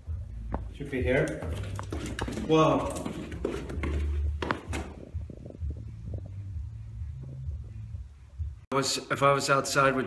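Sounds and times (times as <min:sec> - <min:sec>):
soft low thumps: 0:00.0 - 0:08.7.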